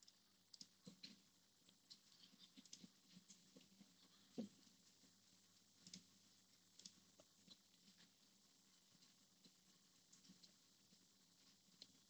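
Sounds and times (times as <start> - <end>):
computer mouse clicks: 0.5 - 1.2.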